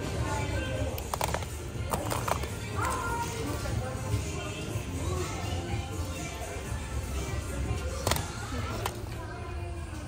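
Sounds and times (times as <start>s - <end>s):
plastic cases clacking together: 1.0s - 2.5s.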